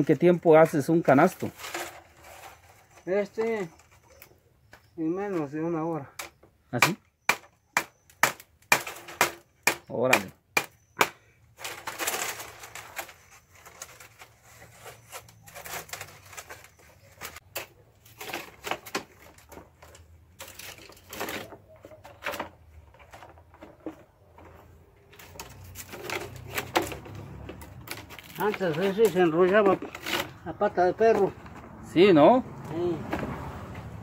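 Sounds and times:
cane strips rustling and creaking: 0.0s - 6.5s, 11.5s - 31.8s.

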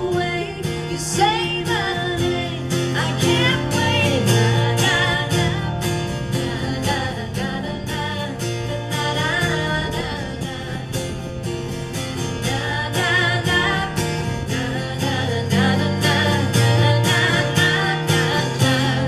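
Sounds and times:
acoustic guitar strumming: 0.0s - 19.0s
women singing: 0.0s - 19.0s.

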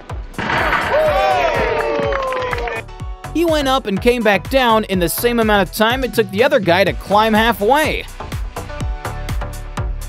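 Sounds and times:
background music with steady beat: 0.0s - 10.0s
people shouting and cheering: 0.4s - 2.9s
long falling yell: 0.5s - 2.8s.

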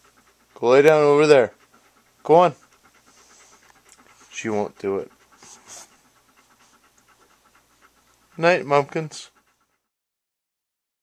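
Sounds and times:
dog panting: 0.0s - 10.0s.

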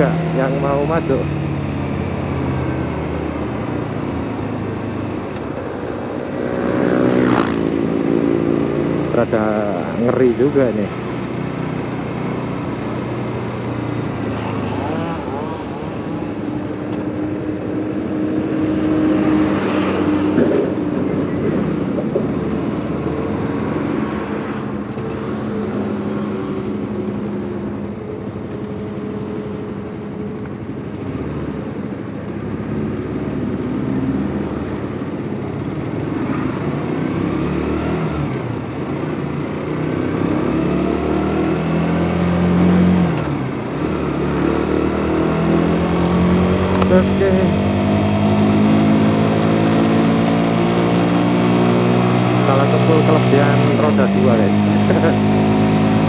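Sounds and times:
motorcycle engine accelerating: 0.0s - 28.0s, 36.0s - 56.0s.

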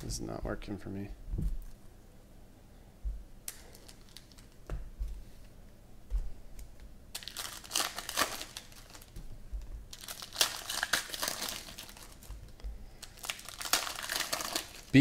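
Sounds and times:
foil wrappers crinkling: 3.5s - 4.7s, 7.1s - 15.0s.

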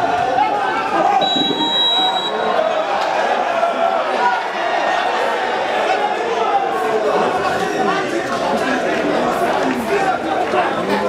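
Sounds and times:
people talking and calling: 0.0s - 11.0s
high whistle blast: 1.2s - 2.6s.

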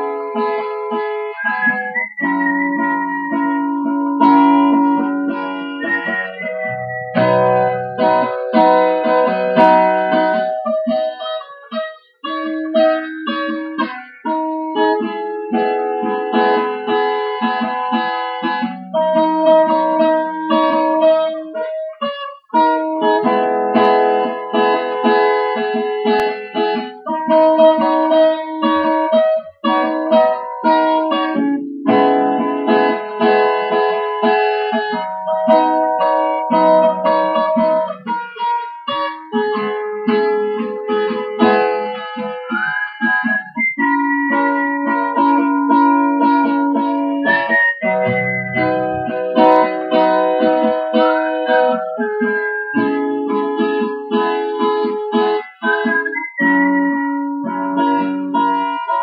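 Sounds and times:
acoustic guitar chords: 0.0s - 59.0s.

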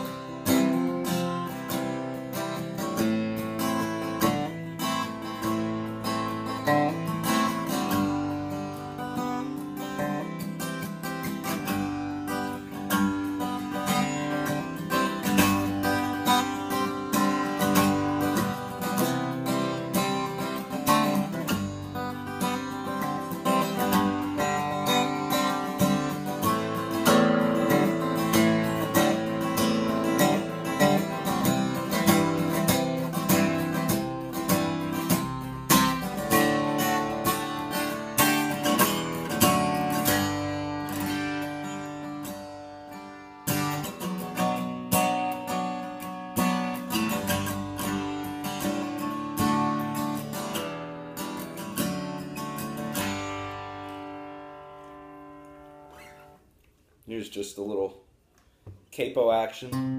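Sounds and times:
acoustic guitar strumming chords: 0.0s - 56.5s, 58.7s - 59.9s.

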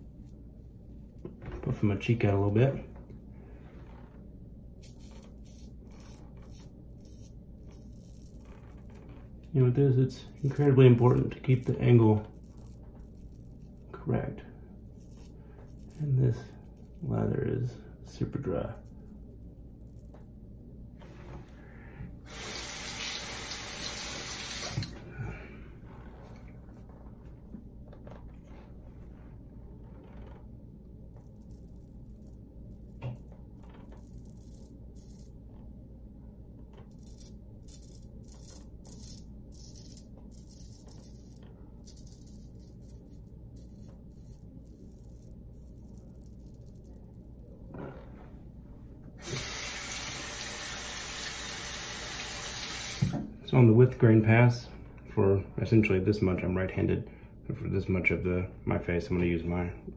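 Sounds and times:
water running from tap: 22.3s - 25.0s, 49.2s - 53.2s.

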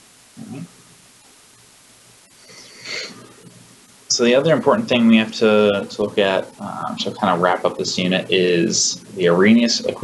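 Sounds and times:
man breathing in: 2.4s - 3.3s.

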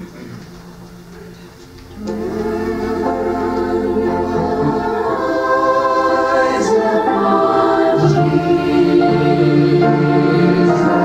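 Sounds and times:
organ accompaniment: 0.0s - 11.0s
group singing a hymn: 1.9s - 11.0s.

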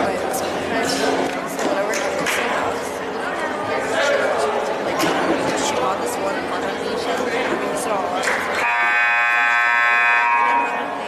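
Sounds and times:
scoreboard horn blast: 8.6s - 10.9s.

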